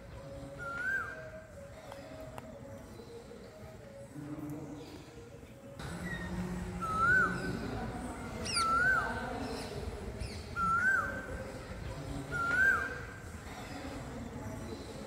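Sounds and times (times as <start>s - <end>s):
high parakeet calls: 5.9s - 7.8s, 8.4s - 11.3s.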